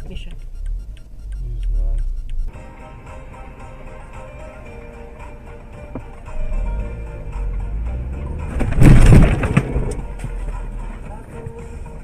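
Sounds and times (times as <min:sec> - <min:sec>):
engine and road noise: 0:00.0 - 0:12.0
car collision impact: 0:08.3 - 0:10.4.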